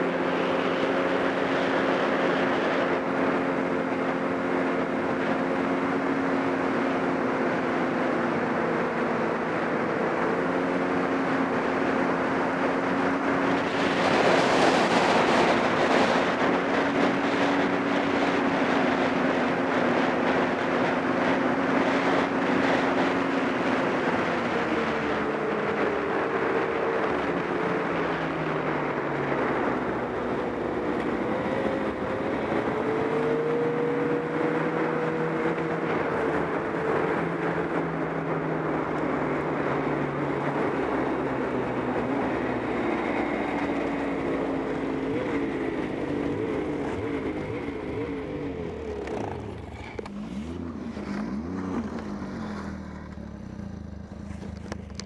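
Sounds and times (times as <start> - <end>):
snowmobile engine running: 0.0 - 55.0
track and wind noise: 0.0 - 55.0.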